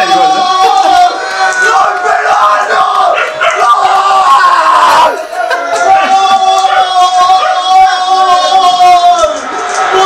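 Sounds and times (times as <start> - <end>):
men shouting and yelling: 0.0 - 10.0.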